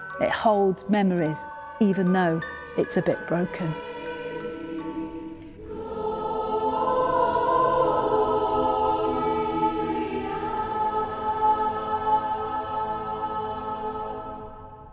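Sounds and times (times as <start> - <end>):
soft chiming notes: 0.0 - 5.8
choir singing sustained chords: 0.0 - 14.9.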